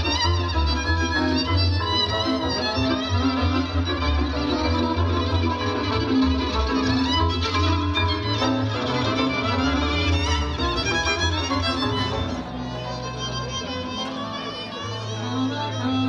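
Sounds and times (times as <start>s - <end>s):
double bass: 0.0s - 16.0s
violin: 0.0s - 16.0s.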